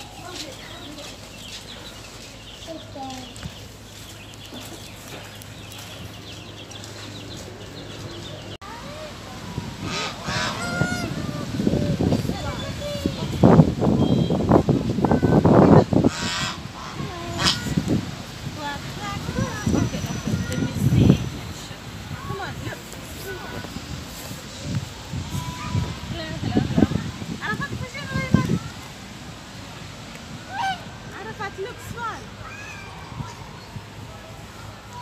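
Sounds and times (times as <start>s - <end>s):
people talking: 0.0s - 1.5s, 2.6s - 3.6s, 5.9s - 29.0s, 30.5s - 35.0s
geese honking: 9.8s - 11.6s, 16.0s - 17.8s.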